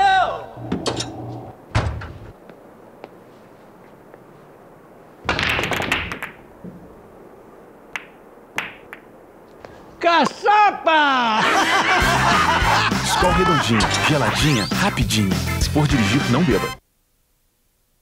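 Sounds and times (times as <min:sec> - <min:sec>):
billiard ball clacks: 0:05.3 - 0:06.4, 0:07.9 - 0:09.1
billiard balls clattering: 0:05.3 - 0:06.5.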